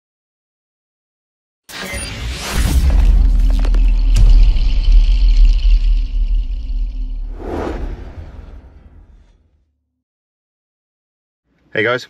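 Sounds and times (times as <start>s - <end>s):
whoosh: 5.5s - 9.6s.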